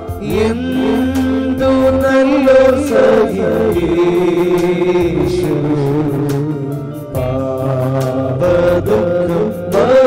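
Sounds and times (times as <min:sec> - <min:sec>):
hymn singing: 0:00.0 - 0:10.0
instrumental bass accompaniment: 0:00.0 - 0:10.0.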